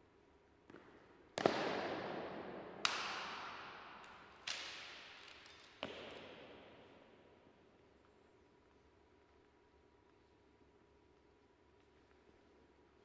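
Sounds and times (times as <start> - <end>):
sharp cracks echoing: 1.3 - 7.4.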